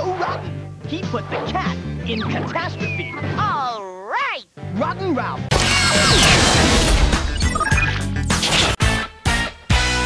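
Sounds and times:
tv promo music: 0:04.6 - 0:10.0.

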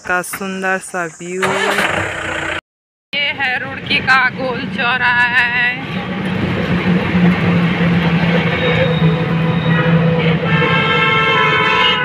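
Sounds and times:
rickshaw ride rumble: 0:03.2 - 0:12.0.

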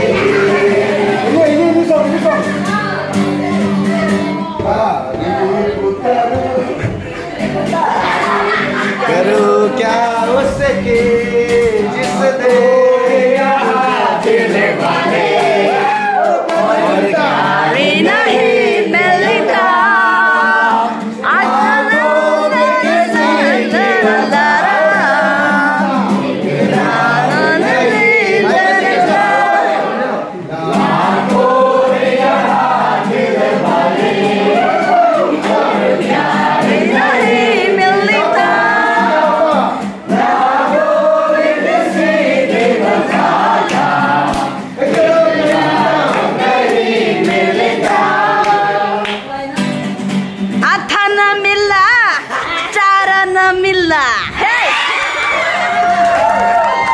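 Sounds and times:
group singing long notes: 0:00.0 - 0:50.5.

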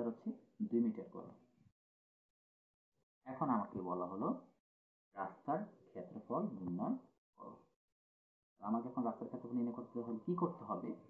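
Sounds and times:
man lecturing: 0:00.0 - 0:01.3, 0:03.3 - 0:04.4, 0:05.2 - 0:07.0, 0:08.6 - 0:11.0.

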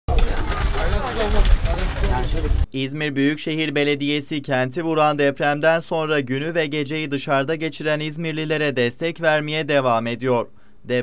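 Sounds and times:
people talking over one another: 0:00.0 - 0:02.7
steady low rumble: 0:00.1 - 0:02.7.

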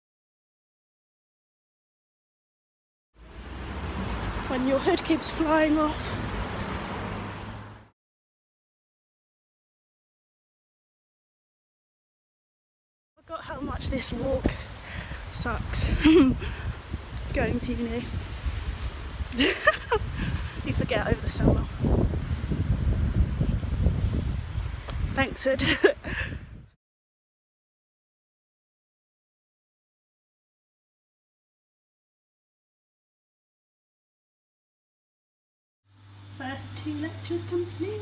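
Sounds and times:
wind buffeting microphone: 0:13.3 - 0:26.8.

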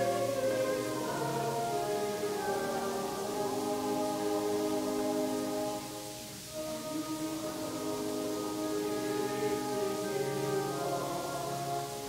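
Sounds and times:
group singing a hymn: 0:00.0 - 0:12.0.

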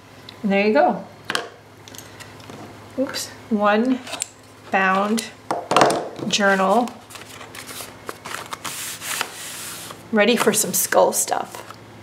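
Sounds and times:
paper rustling: 0:06.3 - 0:10.5.

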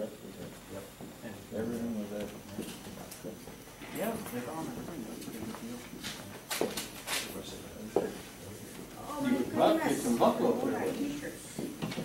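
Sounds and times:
indistinct conversation: 0:00.0 - 0:12.0.

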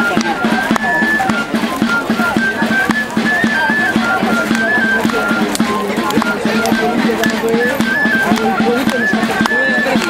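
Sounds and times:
children chattering: 0:00.0 - 0:10.0
dancers' feet knocking on gravel: 0:00.0 - 0:10.0
folk dance melody over drone: 0:00.0 - 0:10.0.

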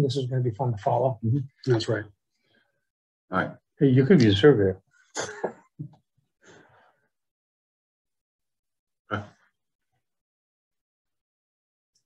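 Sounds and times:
person coughing: 0:05.2 - 0:05.6.

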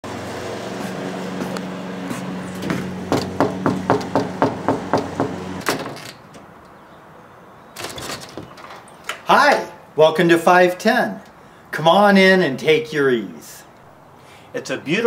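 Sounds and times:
low motor hum: 0:00.0 - 0:05.6
knuckles rapping on wooden frame: 0:02.6 - 0:05.4
screen door clattering open: 0:02.6 - 0:06.6, 0:07.7 - 0:09.6.

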